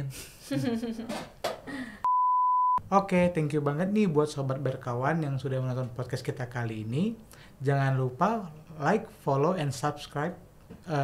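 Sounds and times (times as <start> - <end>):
laughter: 0.1 - 1.8
censor bleep: 2.1 - 2.8.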